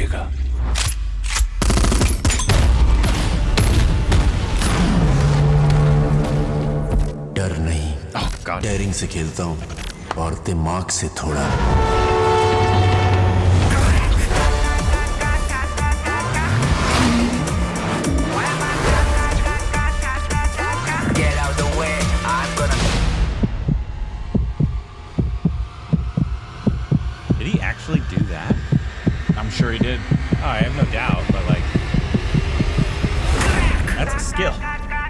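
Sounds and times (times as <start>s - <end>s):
train horn blast: 11.4s - 15.5s
low rumble: 22.7s - 34.3s
low heartbeat-like thudding pulse: 23.1s - 33.4s.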